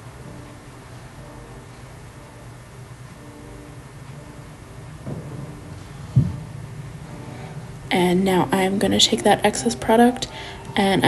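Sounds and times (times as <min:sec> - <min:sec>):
dull low thump: 0:05.0 - 0:06.5.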